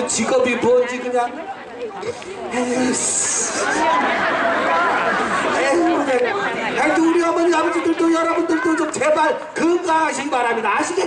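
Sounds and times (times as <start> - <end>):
audience chatter: 0.0 - 11.0.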